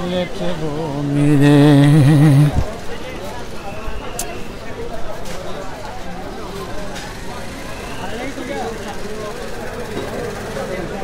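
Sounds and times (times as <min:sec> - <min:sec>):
people talking: 0:00.0 - 0:03.5.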